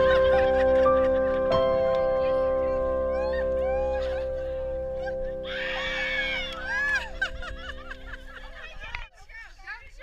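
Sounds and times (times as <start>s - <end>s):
background music with held chords: 0.0s - 8.7s.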